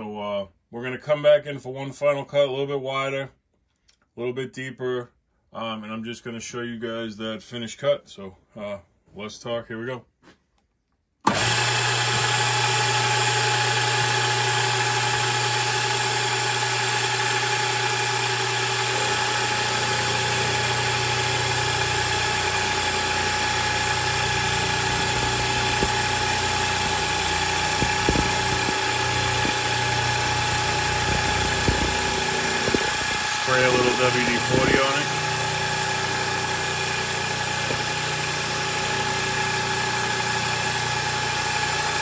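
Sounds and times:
milling machine motor whining: 0:11.3 - 0:42.0.

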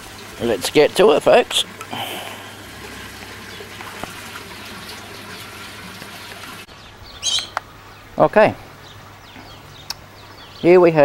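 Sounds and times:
high bird chirp: 0:06.7 - 0:08.1.

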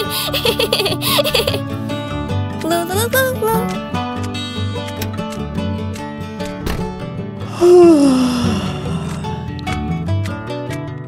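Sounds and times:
cartoon kitten giggling: 0:00.0 - 0:01.6
background music: 0:00.0 - 0:11.0.

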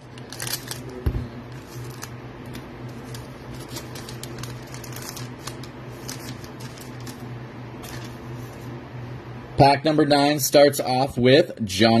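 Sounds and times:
steady low hum: 0:00.0 - 0:12.0
foil wrapper tearing and crinkling: 0:00.2 - 0:02.2, 0:02.9 - 0:07.2.

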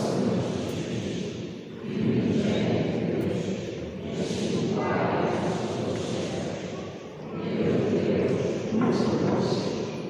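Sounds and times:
congregation reciting together: 0:00.0 - 0:10.0.

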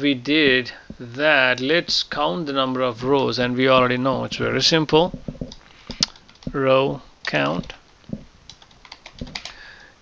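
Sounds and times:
computer keyboard key clicks: 0:08.5 - 0:09.6.

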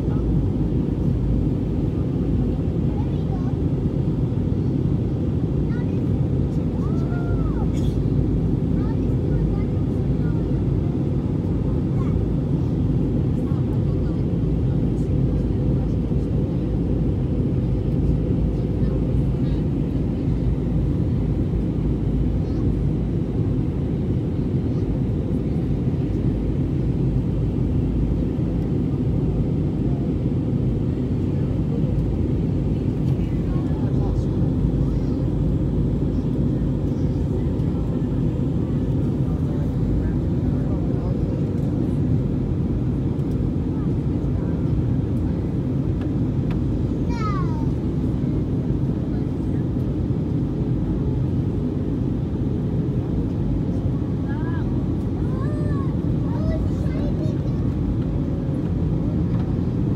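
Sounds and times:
airplane cabin engine roar: 0:00.0 - 0:59.9.

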